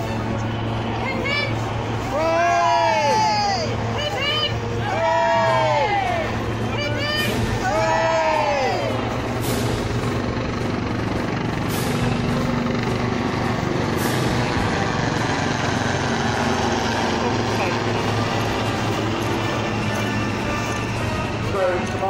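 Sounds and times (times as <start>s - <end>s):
outdoor crowd hum: 0.0s - 22.0s.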